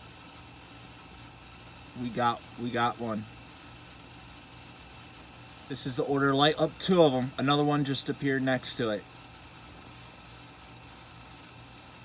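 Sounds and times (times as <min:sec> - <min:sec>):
outdoor hiss: 0:00.0 - 0:12.0.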